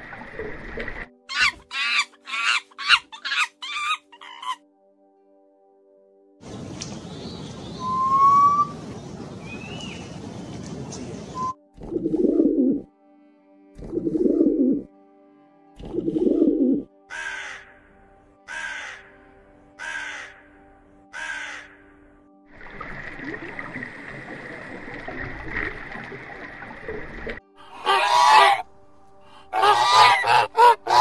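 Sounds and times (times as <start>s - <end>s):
background music drone: 0.0s - 9.6s, 11.4s - 31.0s
bird chirps and whistles: 7.7s - 8.8s.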